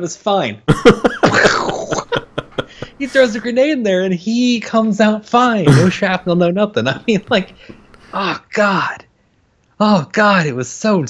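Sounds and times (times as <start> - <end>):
man laughing hard: 0.7 - 3.5, 5.7 - 6.1.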